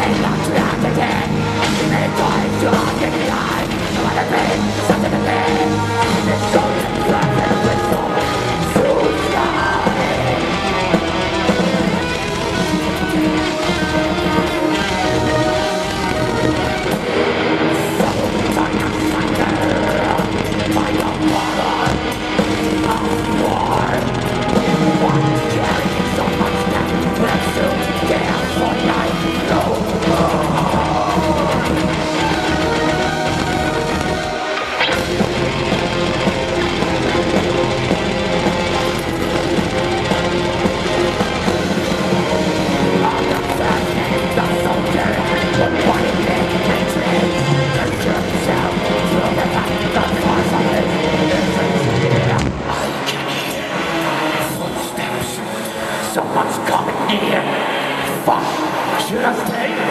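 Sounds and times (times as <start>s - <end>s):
distorted guitars: 0.0s - 59.9s
metal band playing live: 0.0s - 59.9s
rapid drumming: 0.0s - 59.9s.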